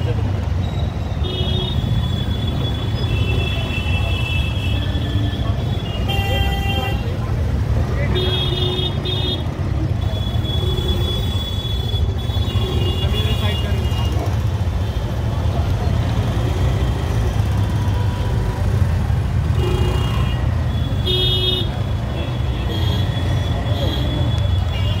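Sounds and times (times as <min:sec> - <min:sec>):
road traffic rumble: 0:00.0 - 0:25.0.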